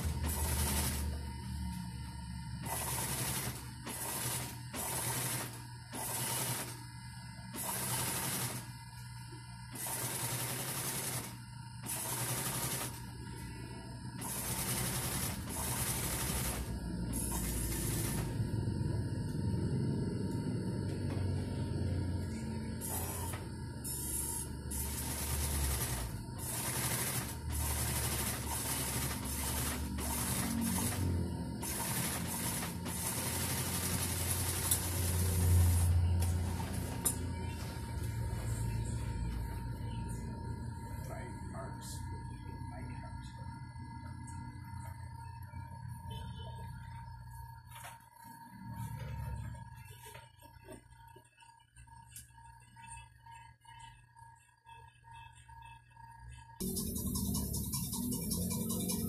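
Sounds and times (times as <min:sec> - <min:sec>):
sewing machine stitching: 0:00.0 - 0:01.2, 0:02.6 - 0:06.8, 0:07.6 - 0:08.7, 0:09.7 - 0:13.0, 0:14.2 - 0:18.4, 0:24.7 - 0:36.8.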